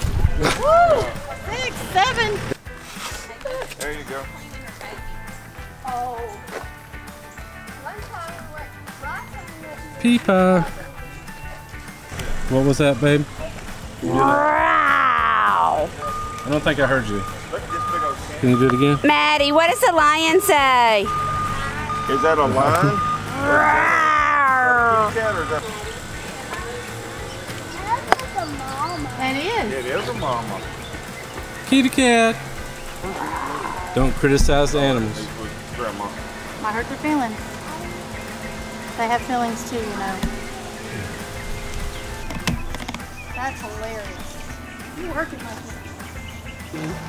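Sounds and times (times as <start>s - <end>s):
background music with steady beat: 0.0s - 47.0s
child imitating lion roar: 14.0s - 15.9s, 23.3s - 25.1s, 33.0s - 34.0s.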